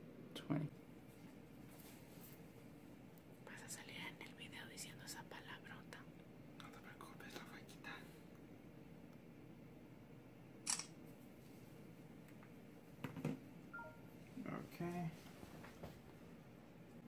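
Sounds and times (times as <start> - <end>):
camera shutter click: 10.6 - 11.0.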